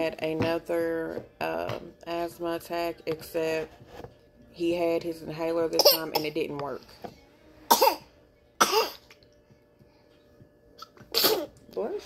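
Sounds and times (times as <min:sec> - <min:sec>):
baby coughing: 0:05.7 - 0:06.4, 0:07.7 - 0:09.1, 0:10.8 - 0:11.6.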